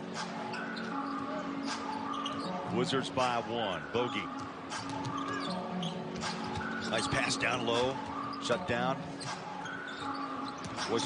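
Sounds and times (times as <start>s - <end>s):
arena music: 0.0s - 11.0s.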